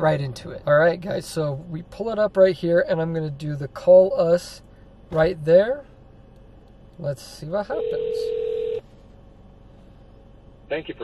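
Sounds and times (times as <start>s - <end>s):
phone ringing tone: 7.7s - 8.8s.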